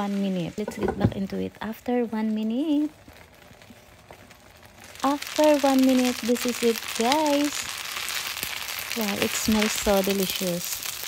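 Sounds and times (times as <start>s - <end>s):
pan simmering: 0.0s - 11.0s.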